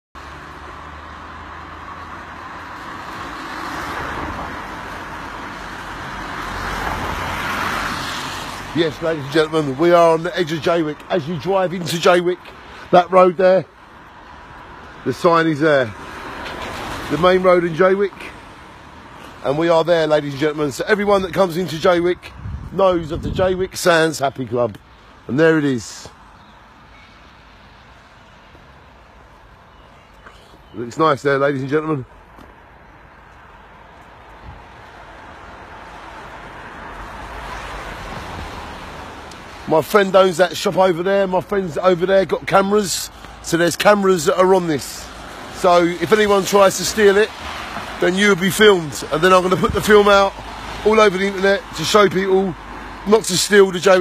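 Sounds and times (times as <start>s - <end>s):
cars passing on a road: 0.2s - 54.0s.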